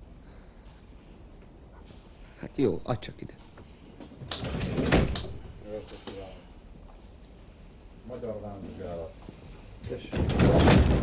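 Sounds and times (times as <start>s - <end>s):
door shutting with a bang: 4.3s - 5.6s, 9.9s - 11.0s
sliding door running on track: 10.0s - 11.0s.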